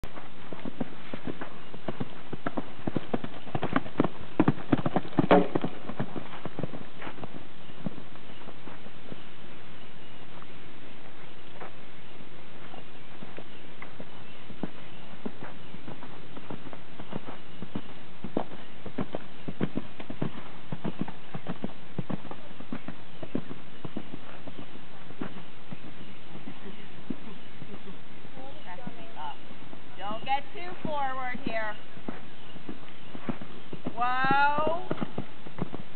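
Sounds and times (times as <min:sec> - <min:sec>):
horse hoofbeats on sand: 0:00.0 - 0:35.9.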